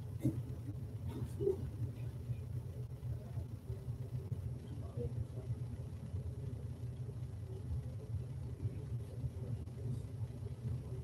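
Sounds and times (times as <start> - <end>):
people praying quietly: 0.0 - 5.7
low room rumble: 0.0 - 11.0.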